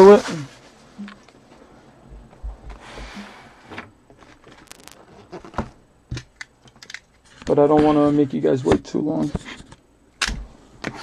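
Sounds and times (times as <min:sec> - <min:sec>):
cardboard and plastic wrap rustling: 0:04.1 - 0:05.8.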